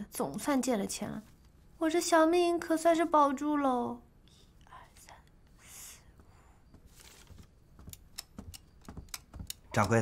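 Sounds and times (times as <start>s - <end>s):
woman whispering: 4.3s - 6.1s.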